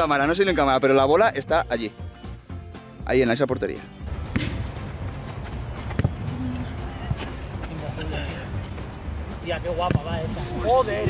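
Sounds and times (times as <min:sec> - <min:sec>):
boot kicking football: 0:04.1 - 0:07.8, 0:09.8 - 0:10.2.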